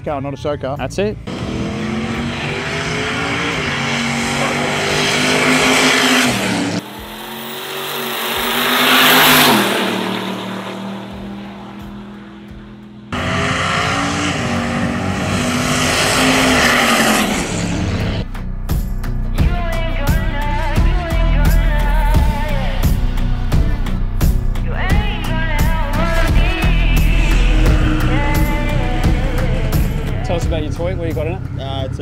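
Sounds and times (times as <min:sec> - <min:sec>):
drag car engines at full throttle: 0:01.0 - 0:18.4, 0:19.8 - 0:32.0.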